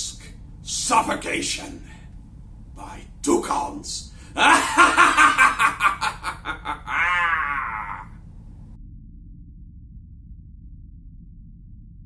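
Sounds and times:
man laughing theatrically: 4.4s - 8.2s.

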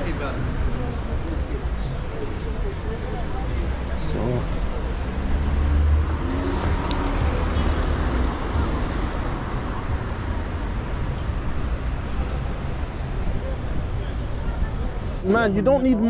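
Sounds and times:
passing vehicle engine rumble: 0.0s - 15.5s
city street traffic noise: 0.0s - 16.0s.

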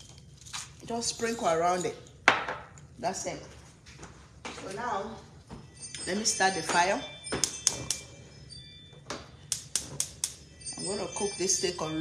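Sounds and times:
stove igniter clicking: 9.5s - 10.4s.

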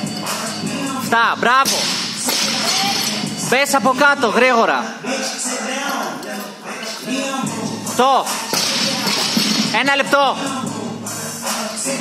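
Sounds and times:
music with singing over speakers: 0.0s - 12.0s.

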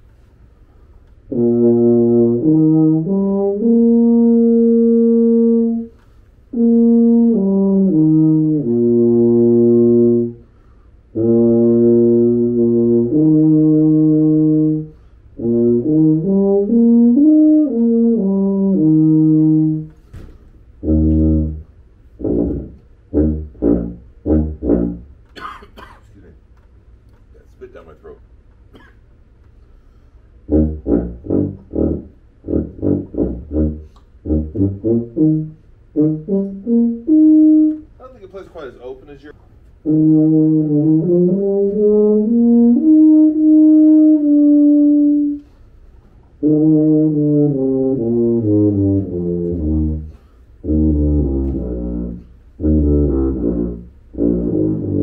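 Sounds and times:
tuba playing: 1.2s - 25.9s, 30.3s - 38.3s, 39.6s - 55.0s.

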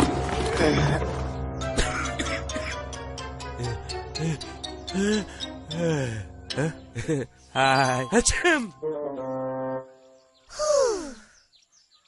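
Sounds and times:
cartoon child sighing: 10.5s - 11.4s.

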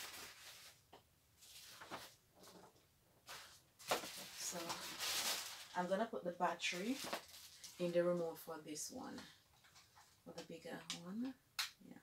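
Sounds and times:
plastic packaging rustling: 0.0s - 0.8s, 1.4s - 8.4s.

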